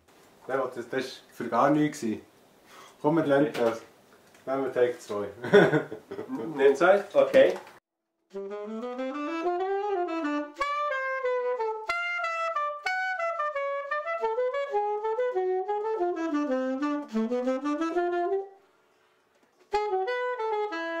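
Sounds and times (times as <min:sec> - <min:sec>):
alto saxophone melody: 0:08.3 - 0:18.8, 0:19.6 - 0:21.0.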